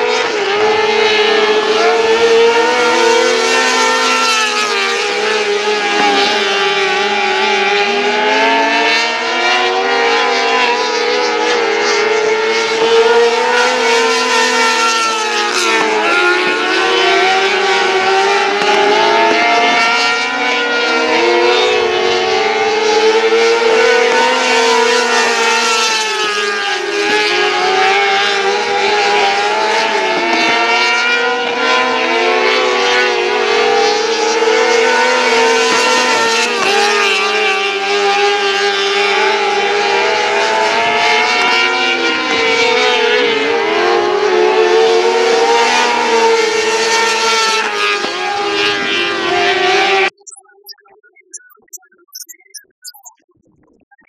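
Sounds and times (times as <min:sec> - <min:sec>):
racing car engines at high revs: 0:00.0 - 0:50.4.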